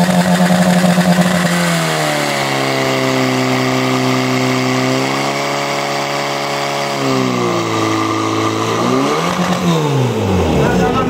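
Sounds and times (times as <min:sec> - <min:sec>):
pump engine revs dropping: 0:00.0 - 0:11.0.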